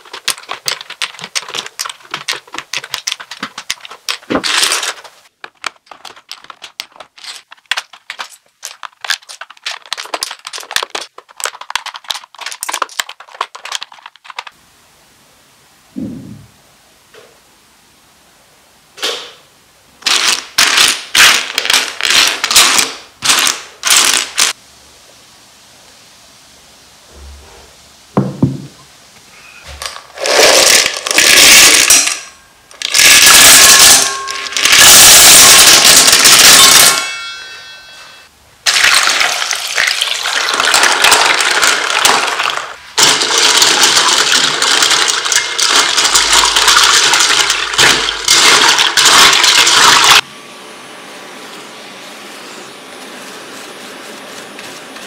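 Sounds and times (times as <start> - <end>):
plastic keycaps clattering: 0.0 - 14.5, 40.6 - 50.2
water pouring and splashing: 38.7 - 50.2.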